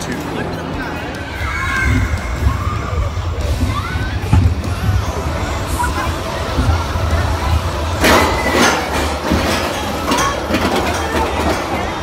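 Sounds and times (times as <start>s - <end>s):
roller coaster rattling on track: 1.6s - 12.0s.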